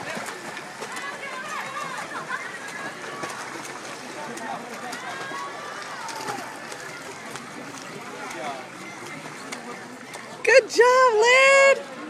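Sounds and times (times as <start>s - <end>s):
crowd cheering and calling out: 0.0s - 12.0s
swimmers splashing: 0.0s - 12.0s.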